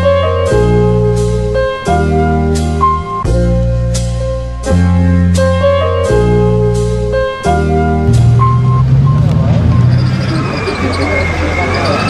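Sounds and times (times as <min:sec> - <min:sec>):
music: 0:00.0 - 0:12.0
vehicle engines rumbling: 0:08.0 - 0:12.0
voices: 0:09.2 - 0:12.0.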